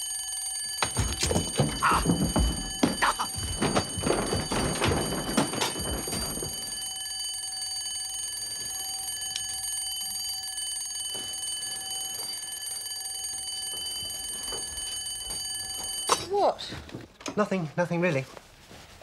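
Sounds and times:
alarm clock bell ringing: 0.0s - 16.5s.

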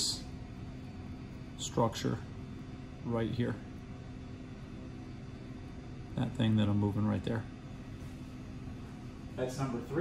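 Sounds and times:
room ventilation hum: 0.0s - 10.0s.

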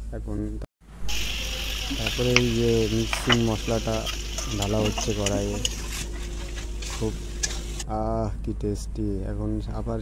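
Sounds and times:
onions frying with steady sizzle: 1.0s - 7.8s
metal spatula scraping a pan: 1.1s - 7.8s.

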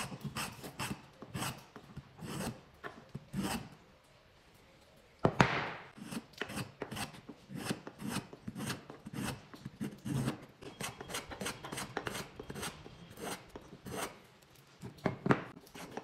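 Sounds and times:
wood scraping strokes: 6.0s - 14.2s.

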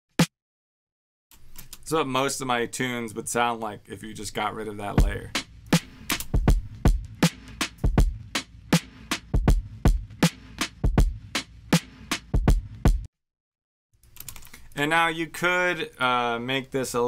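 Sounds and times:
electronic kick and snare pattern: 5.0s - 13.1s.

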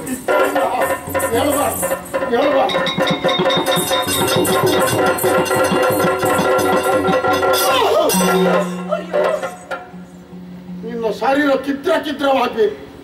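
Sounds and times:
small hand cymbals clinking: 0.0s - 11.2s
rapid drum strokes: 0.0s - 12.0s
steady drone: 0.0s - 13.0s.

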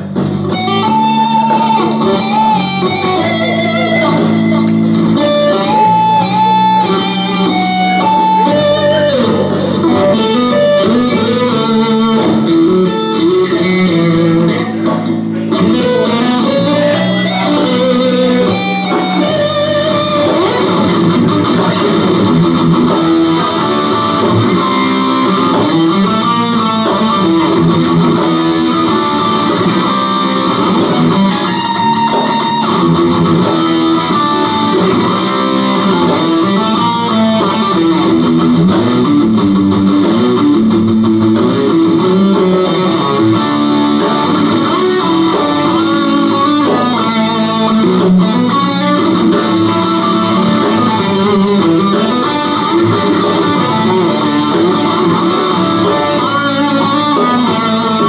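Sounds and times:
backing track: 0.0s - 58.0s
electric guitar rock lead: 0.0s - 58.0s.

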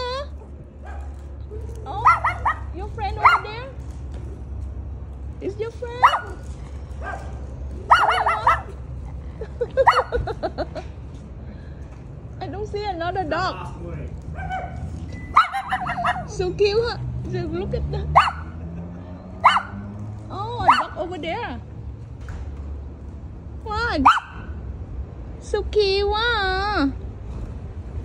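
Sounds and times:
small dog barking: 0.8s - 1.2s, 2.0s - 3.5s, 6.0s - 6.4s, 7.0s - 8.8s, 9.8s - 10.2s, 14.4s - 16.3s, 18.2s - 18.6s, 19.4s - 19.9s, 20.6s - 21.0s, 24.0s - 24.6s.

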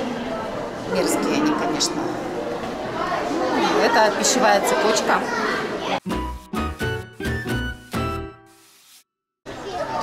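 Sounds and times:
children's chatter and voices: 0.0s - 6.1s, 9.5s - 10.0s.

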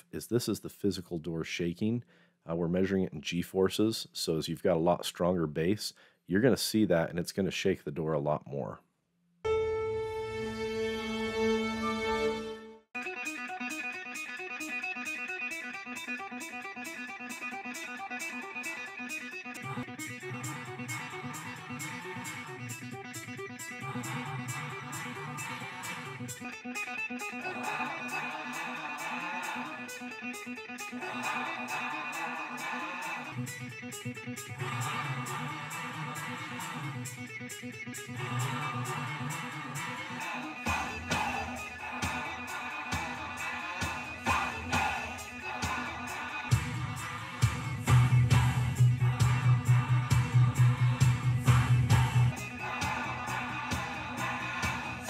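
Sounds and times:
song with electric guitar on car stereo: 13.0s - 55.0s.

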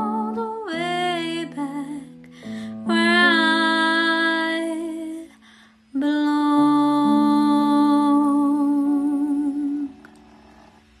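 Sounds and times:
woman singing long note: 6.0s - 10.0s.

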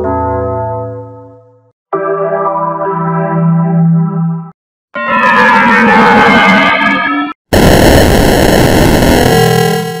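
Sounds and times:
harsh distorted noise: 5.0s - 10.0s.

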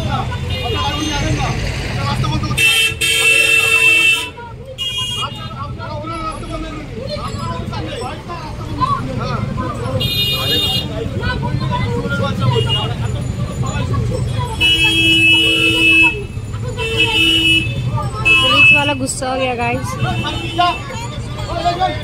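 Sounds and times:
crowd of voices: 0.0s - 22.0s
idling engines rumbling: 0.0s - 22.0s
vehicle horns honking: 2.5s - 5.7s, 9.9s - 11.1s, 12.3s - 13.1s, 14.3s - 21.6s.

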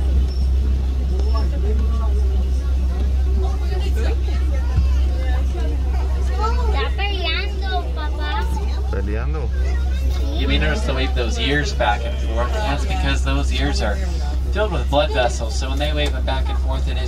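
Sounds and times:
passengers chattering: 0.0s - 17.0s
vehicle engine rumble: 0.0s - 17.0s.

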